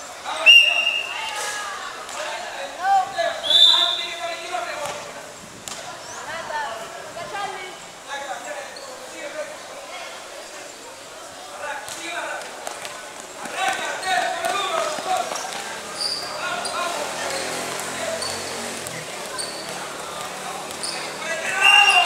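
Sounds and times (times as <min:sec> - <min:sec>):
voices calling out: 0:00.0 - 0:22.0.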